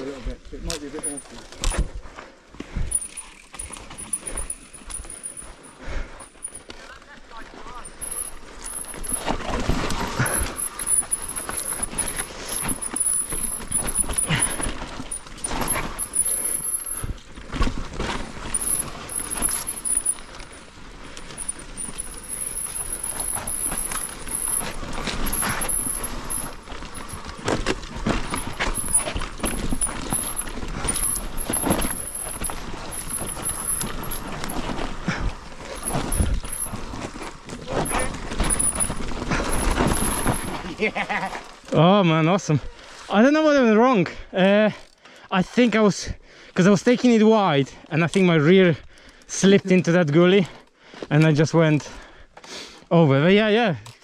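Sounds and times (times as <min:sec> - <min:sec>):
bike rattling and knocking: 0:00.0 - 0:02.0, 0:02.6 - 0:42.0
bike tyres rumbling on dirt: 0:00.0 - 0:43.1.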